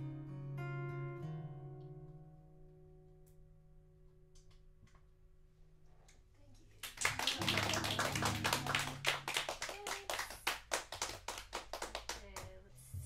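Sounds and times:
audience clapping: 6.8 - 12.6.

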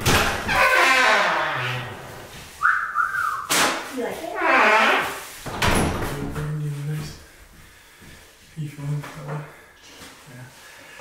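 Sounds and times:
person whistling short notes: 2.6 - 3.5.

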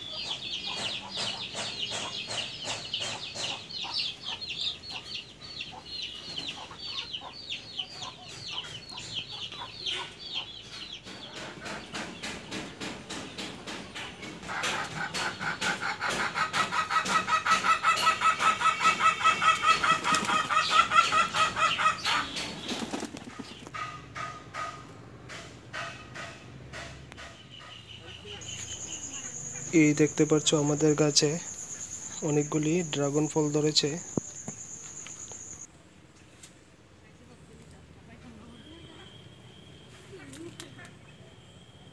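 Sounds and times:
chicken clucking rapidly: 0.0 - 31.4.

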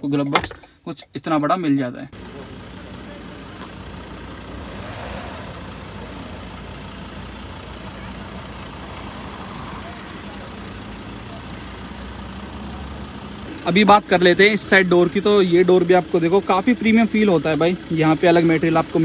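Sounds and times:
diesel engine idling: 2.1 - 19.0.

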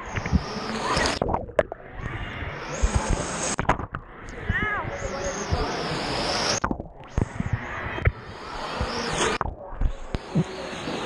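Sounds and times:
water rushing and splashing: 0.0 - 11.0
water knocking against camera: 2.9 - 4.6.

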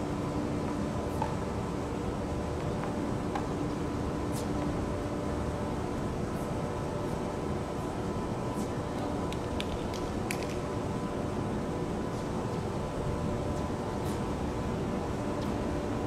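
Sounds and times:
background hum and hiss: 0.0 - 16.0.

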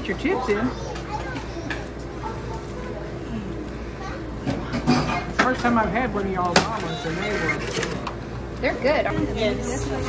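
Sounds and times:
chatter of people talking: 0.0 - 10.0.

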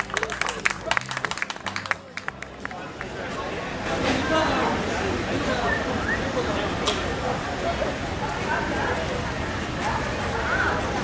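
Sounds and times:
scattered handclaps: 0.0 - 3.5
crowd chatter: 0.0 - 11.0.

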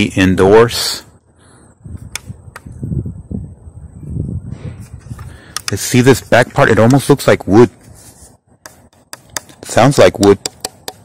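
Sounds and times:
sharp clicks: 2.0 - 2.7, 5.2 - 5.9, 8.6 - 11.0.

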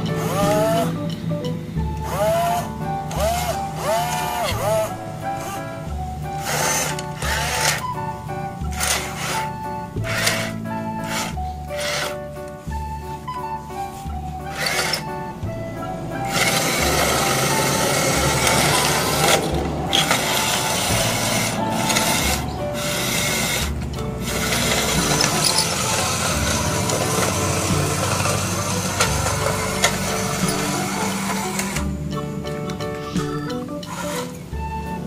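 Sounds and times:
toy electric motor whirring: 0.0 - 1.0, 2.0 - 8.0, 8.6 - 12.2, 14.5 - 15.1, 16.2 - 31.9, 33.2 - 34.4
background music with bass: 0.0 - 35.0.

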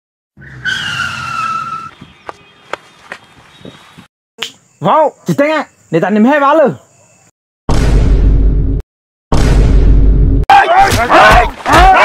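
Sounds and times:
tyre screech skid effect: 0.4 - 2.0.

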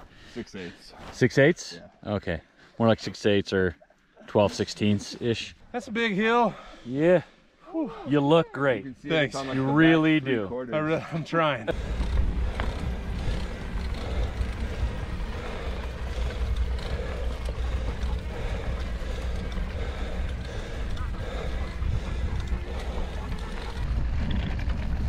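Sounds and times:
tyres rolling on dirt road: 9.0 - 25.0
wind buffeting microphone: 11.7 - 25.0.

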